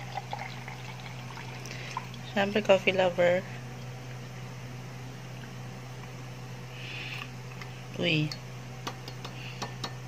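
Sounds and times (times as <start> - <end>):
drink pouring into a glass: 0.0 - 2.2.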